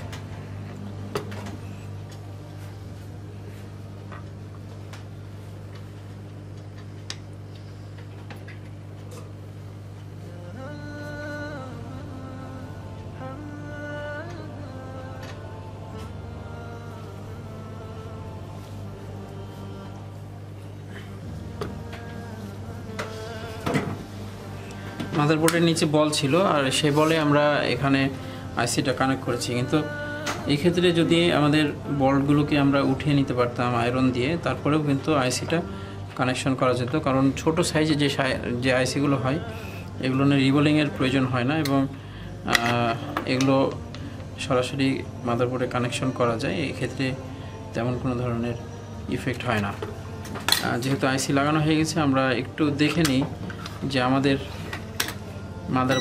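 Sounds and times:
low buzzing hum: 0:00.0 - 0:50.4.

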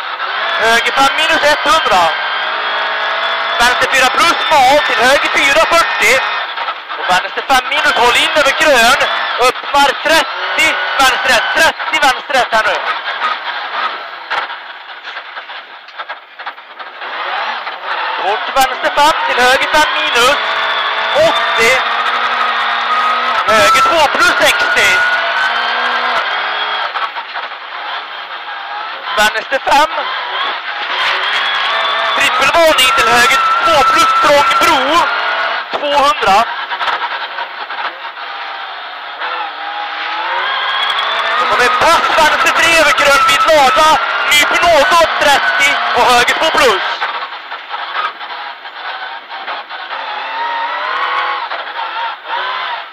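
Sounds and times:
car engine and road noise: 0:00.0 - 0:52.9.

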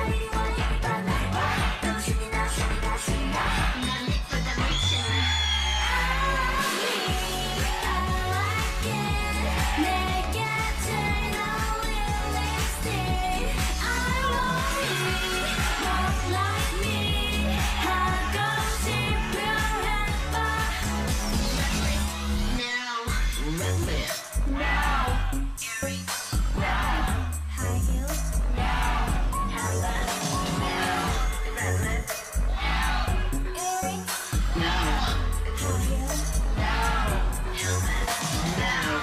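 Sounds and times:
bass-heavy electronic beat: 0:00.0 - 0:39.0
female vocals singing: 0:00.0 - 0:39.0.

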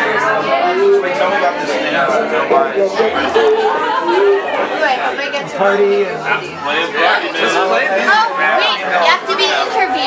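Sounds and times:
murmur of conversation: 0:00.0 - 0:10.0.

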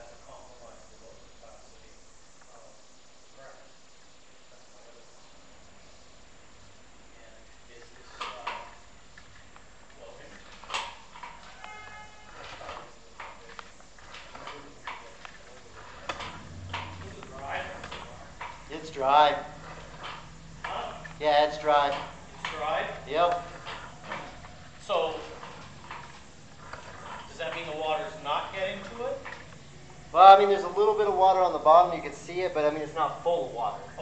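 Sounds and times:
low hiss: 0:00.0 - 0:34.0
brief beep: 0:11.6 - 0:12.4.

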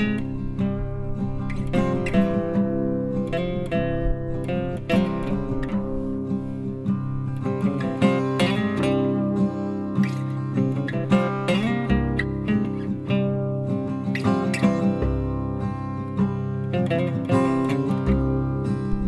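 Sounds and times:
acoustic guitar melody: 0:00.0 - 0:19.0.

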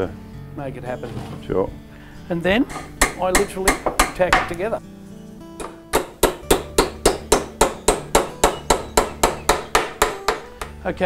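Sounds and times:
acoustic guitar music: 0:00.0 - 0:11.0
small hammer tapping tacks into wood: 0:02.7 - 0:04.6, 0:05.6 - 0:10.8.

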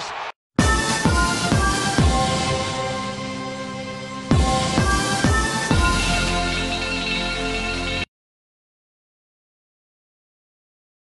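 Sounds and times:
electronic outro music: 0:00.6 - 0:08.1.

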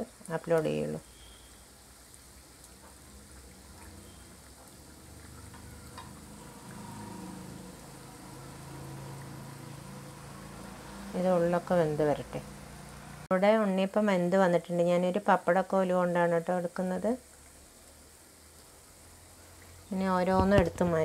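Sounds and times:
oil sizzling and bubbling: 0:00.0 - 0:21.0.

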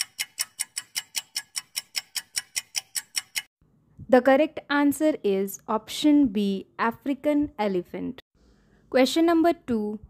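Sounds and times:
rapid clock-like ticks: 0:00.0 - 0:03.5.

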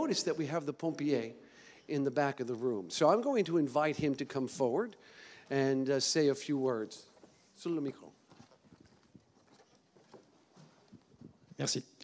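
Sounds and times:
faint footsteps on hard floor: 0:07.1 - 0:11.4.

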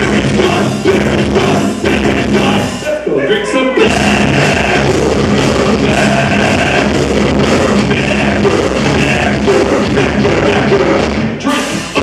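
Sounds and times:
bass guitar chords: 0:00.0 - 0:02.9, 0:03.8 - 0:12.0
drums: 0:00.0 - 0:03.1, 0:03.7 - 0:12.0
distorted electric guitars: 0:00.0 - 0:12.0.

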